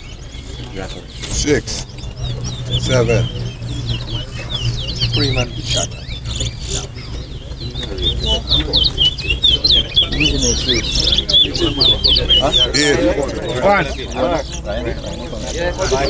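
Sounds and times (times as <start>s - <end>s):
caged bird singing high chirps: 0.0s - 16.0s
crowd voices murmuring: 0.0s - 16.0s.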